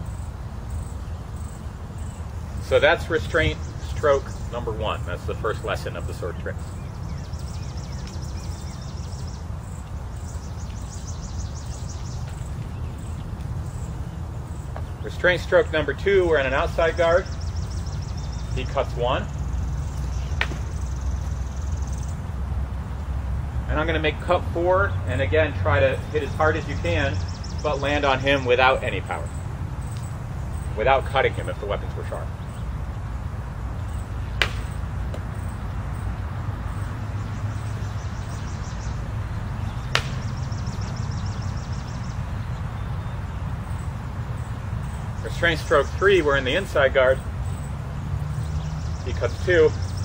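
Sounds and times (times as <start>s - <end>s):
low outdoor rumble: 0.0s - 50.0s.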